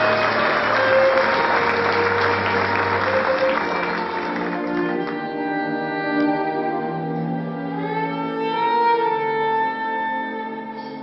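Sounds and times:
audience applauding: 0:00.0 - 0:05.3
instrumental stage music: 0:00.0 - 0:11.0.

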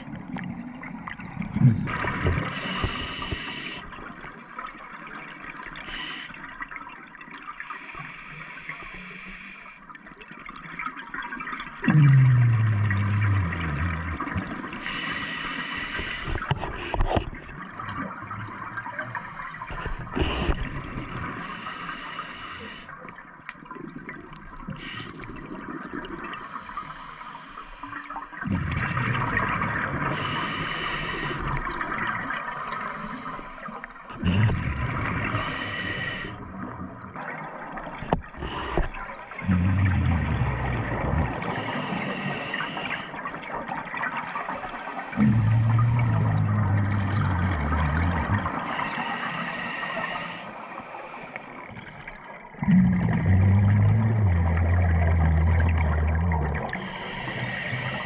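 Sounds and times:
gurgling exhaled bubbles: 0:00.0 - 0:06.0, 0:10.5 - 0:21.7, 0:27.9 - 0:58.0
regulator breathing underwater: 0:01.9 - 0:04.0, 0:05.8 - 0:06.4, 0:07.8 - 0:09.8, 0:14.7 - 0:17.2, 0:19.0 - 0:23.0, 0:24.7 - 0:25.4, 0:26.4 - 0:29.0, 0:30.0 - 0:31.7, 0:32.4 - 0:36.4, 0:38.3 - 0:43.2, 0:44.4 - 0:51.7, 0:52.6 - 0:58.0.

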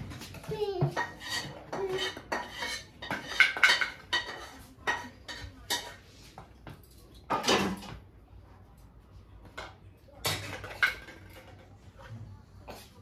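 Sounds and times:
kitchenware clinking and clattering: 0:00.0 - 0:08.1, 0:09.4 - 0:13.0.

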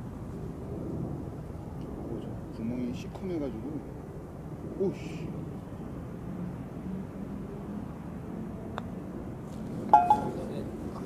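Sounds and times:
putter striking golf ball: 0:09.9 - 0:10.4.

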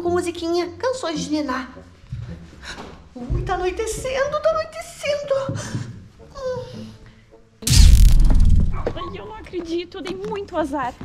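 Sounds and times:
loud boom with deep rumble: 0:07.7 - 0:09.2.

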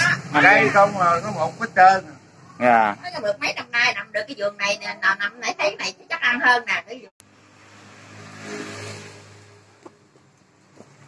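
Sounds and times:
vehicle passing: 0:00.0 - 0:03.3, 0:07.2 - 0:11.0.

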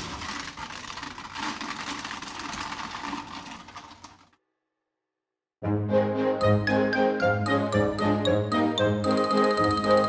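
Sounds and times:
small machine clattering: 0:00.0 - 0:04.4.

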